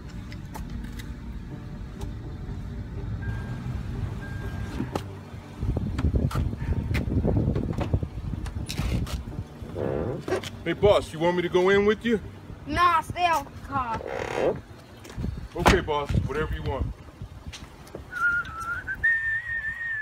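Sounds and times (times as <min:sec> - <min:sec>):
car cabin rumble: 0:01.8 - 0:10.6
short beeps: 0:03.2 - 0:04.9.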